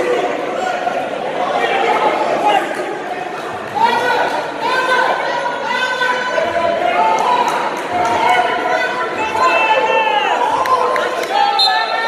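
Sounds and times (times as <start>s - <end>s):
coaches and spectators calling out: 0.0s - 12.0s.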